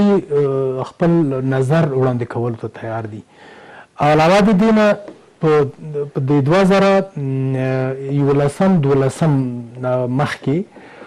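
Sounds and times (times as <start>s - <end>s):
man's voice holding a vowel: 0.0s - 3.2s, 4.0s - 10.7s.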